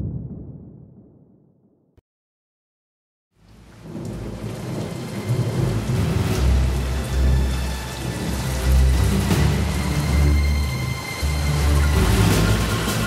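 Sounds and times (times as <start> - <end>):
rumbling thunder: 0.0 - 1.8, 3.6 - 9.7
rain: 3.4 - 13.0.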